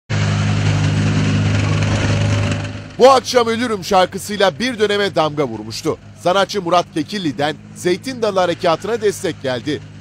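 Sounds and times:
broad rushing noise: 0.1 - 4.7
military vehicle engine droning: 0.1 - 10.0.

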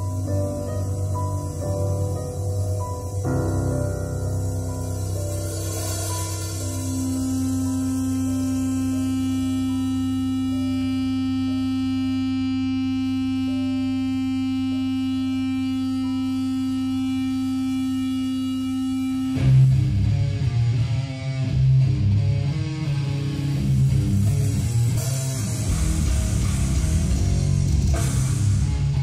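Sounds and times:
drums: 0.0 - 9.0, 19.4 - 29.0
faint higher notes: 0.0 - 21.6
bass guitar: 0.0 - 29.0
distorted electric guitar: 0.0 - 29.0
steady held drone: 0.0 - 29.0.

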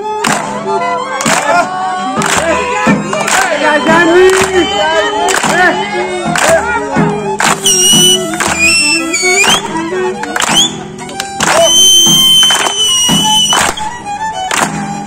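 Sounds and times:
person singing: 0.0 - 10.1
live folk band playing: 0.0 - 15.0
violin long high notes: 3.8 - 15.0.

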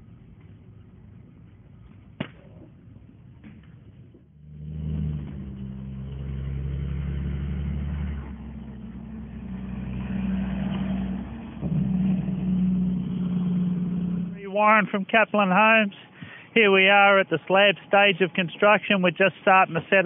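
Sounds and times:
vehicle engine running: 4.2 - 19.2.

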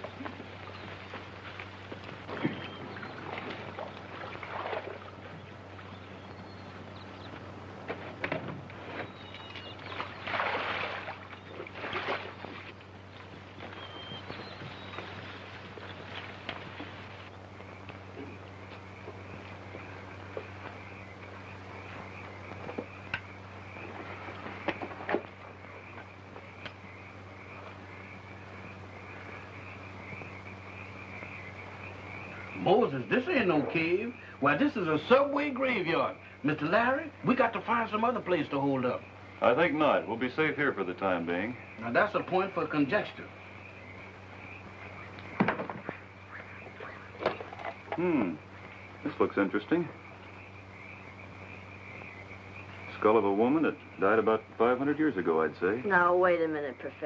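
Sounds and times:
low film soundtrack hum: 0.0 - 57.0
rustling and scraping of leaves: 9.9 - 18.1.

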